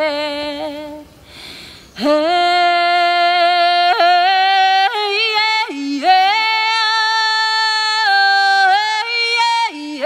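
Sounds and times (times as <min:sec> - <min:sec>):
woman singing without words: 0:00.0 - 0:01.2, 0:01.9 - 0:10.0.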